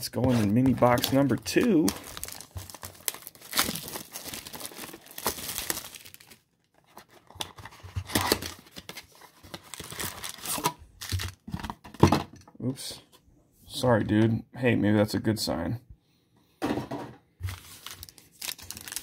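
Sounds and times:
plastic shrink-wrap crinkling: 0.2 - 7.3, 17.5 - 19.0.

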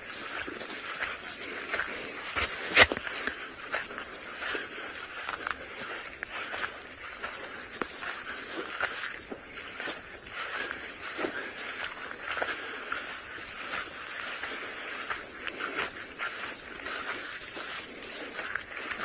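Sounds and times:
footsteps in dry grass: 0.0 - 19.0.

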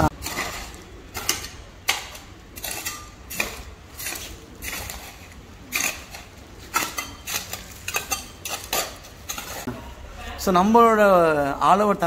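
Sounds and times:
hands scraping dry soil: 2.2 - 9.7.

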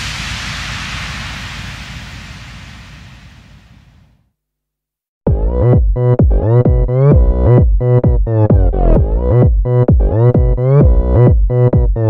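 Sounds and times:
electronic white-noise swell: 0.0 - 4.2
low fluttering rumble: 0.0 - 4.2.

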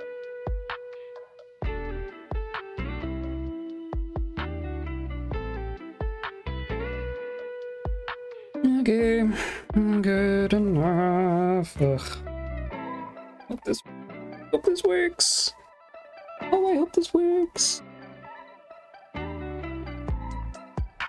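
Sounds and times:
soft guitar music: 0.0 - 21.0
person singing wordlessly: 8.6 - 12.3, 16.4 - 17.8.

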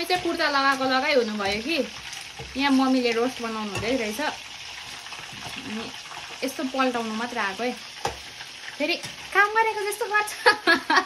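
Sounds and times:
woman talking: 0.0 - 1.9, 2.5 - 4.4, 5.6 - 7.8, 8.8 - 10.9
food sizzling in a pan: 0.0 - 11.0.

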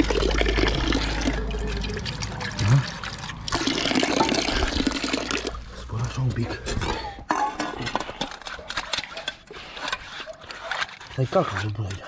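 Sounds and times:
water splashing into a bowl: 0.0 - 5.7.

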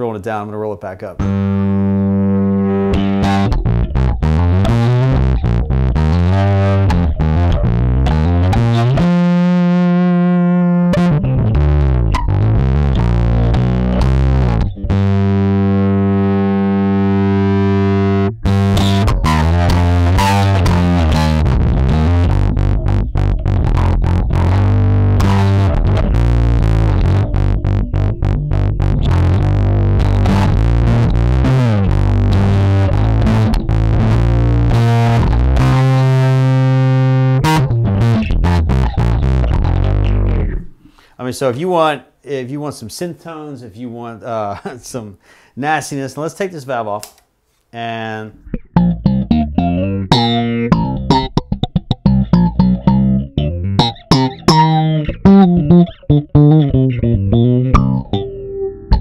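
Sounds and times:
distorted funky bass line: 1.1 - 41.0, 48.0 - 59.0.

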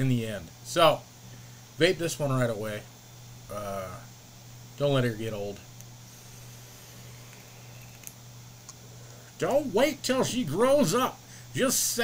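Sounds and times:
low hum: 5.4 - 9.8
vape airy hiss: 6.0 - 9.3
small clicks: 7.2 - 8.8.

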